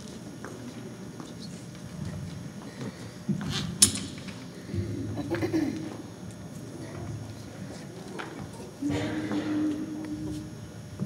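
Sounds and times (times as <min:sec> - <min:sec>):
vocal ensemble singing held notes: 0:08.8 - 0:10.7.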